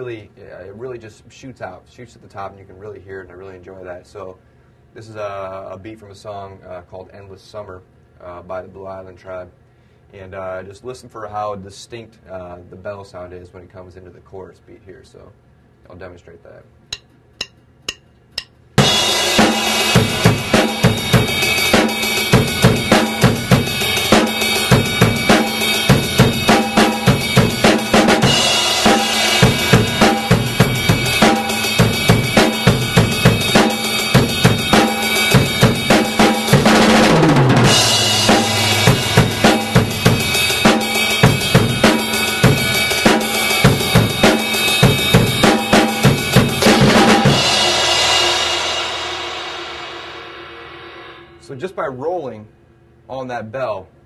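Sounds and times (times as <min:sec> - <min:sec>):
drum kit rock beat: 0:16.9 - 0:51.6
ride cymbal bell ringing: 0:19.8 - 0:36.5, 0:37.7 - 0:47.5.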